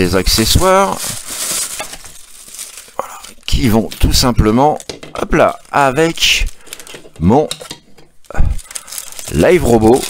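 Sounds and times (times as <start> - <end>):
plastic bag crinkling: 0.1 - 7.5, 8.2 - 10.0.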